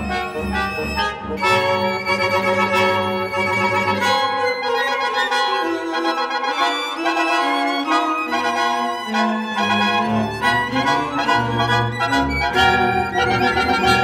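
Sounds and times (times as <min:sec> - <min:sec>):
chamber ensemble playing slow music: 0:00.0 - 0:14.0.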